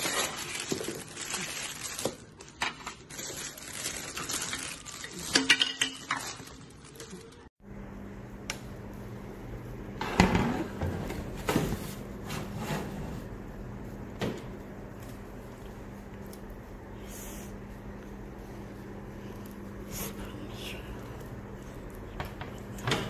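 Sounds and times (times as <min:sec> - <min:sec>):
plastic packaging crinkling: 0:00.0 - 0:07.6
low steady hum: 0:03.5 - 0:23.0.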